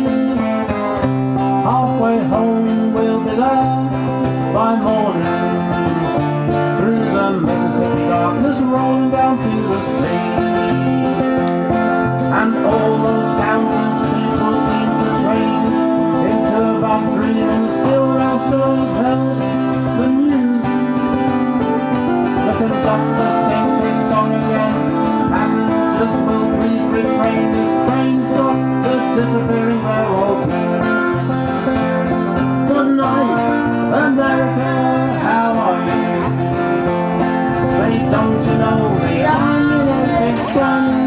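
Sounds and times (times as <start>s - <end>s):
acoustic guitar strumming chords: 0.0s - 41.0s.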